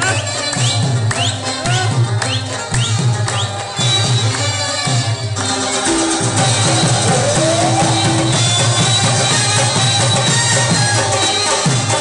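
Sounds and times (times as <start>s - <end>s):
harmonium and reed melody: 0.0s - 12.0s
steady drum rhythm: 0.0s - 12.0s.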